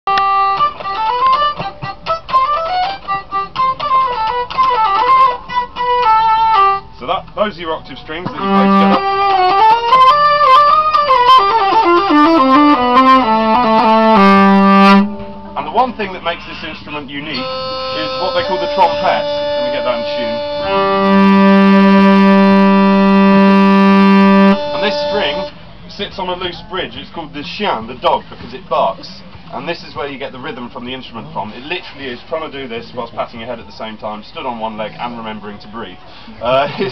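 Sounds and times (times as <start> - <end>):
hurdy-gurdy melody: 0.1 - 25.8.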